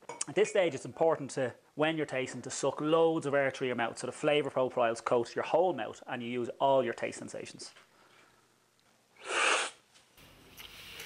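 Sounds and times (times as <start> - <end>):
loud coffee slurp: 9.2 - 9.8.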